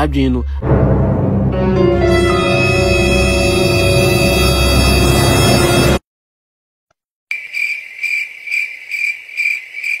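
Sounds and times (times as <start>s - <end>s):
insect chirping trill: 7.3s - 10.0s.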